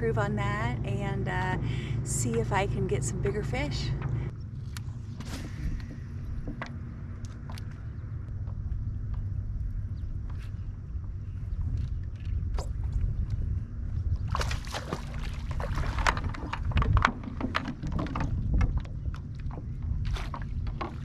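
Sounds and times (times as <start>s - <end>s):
low water rumble: 0.0s - 21.0s
water splashing: 14.2s - 18.9s
water ticking against hull: 14.8s - 21.0s.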